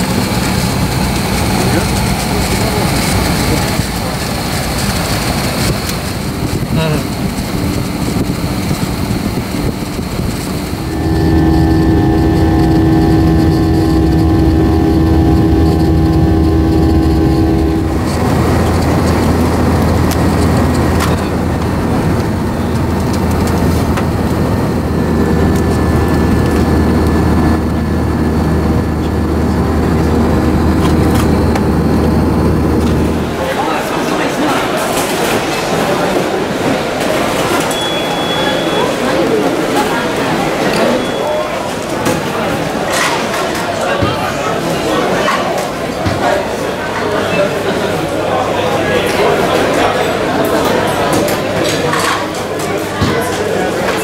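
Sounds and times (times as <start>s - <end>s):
airliner cabin drone: 0.0s - 43.0s
busy terminal hubbub: 0.0s - 54.0s.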